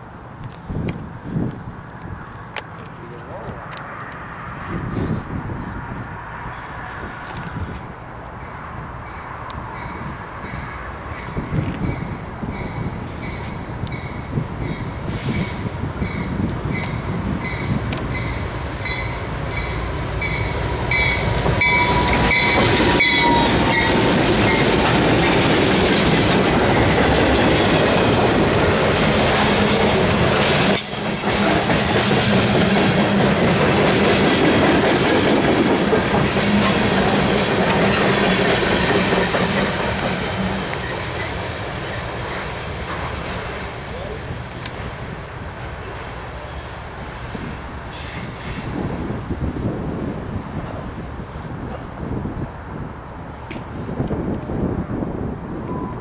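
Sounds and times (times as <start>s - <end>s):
freight train rumbling past: 3.3s - 56.0s
high wheel squeal: 17.5s - 25.4s, 39.6s - 53.5s.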